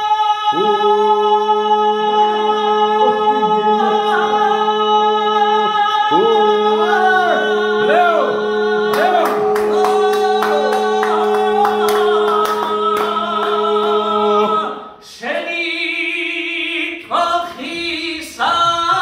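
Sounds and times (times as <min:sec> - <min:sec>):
men singing unaccompanied: 0:00.0 - 0:19.0
rhythmic handclaps: 0:08.8 - 0:14.6.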